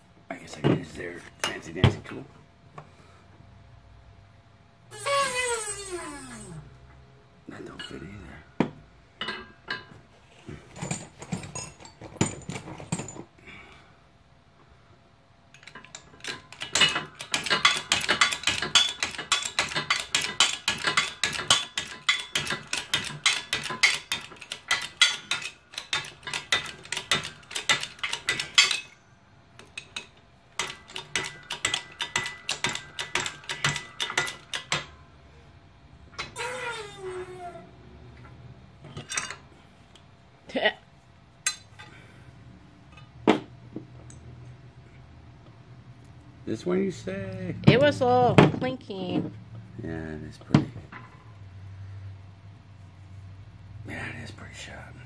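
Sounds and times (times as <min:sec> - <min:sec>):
short falling squeak: 0:04.9 - 0:06.6, 0:36.3 - 0:37.7.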